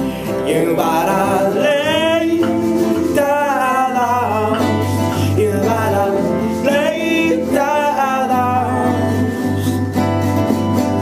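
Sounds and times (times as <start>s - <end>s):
acoustic accompaniment: 0.0s - 11.0s
man singing with vibrato: 0.0s - 11.0s
glockenspiel: 7.9s - 11.0s.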